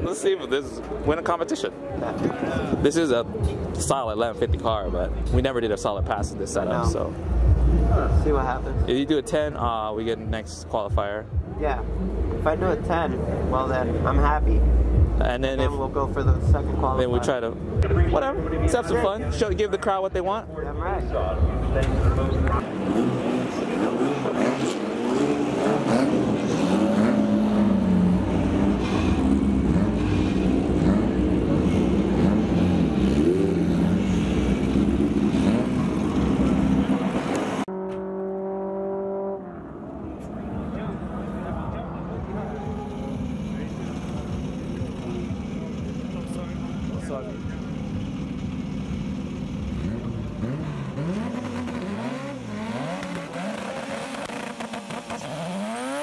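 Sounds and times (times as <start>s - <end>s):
race car engines idling and revving: 0.0s - 56.0s
car engine revving for burnout: 21.5s - 56.0s.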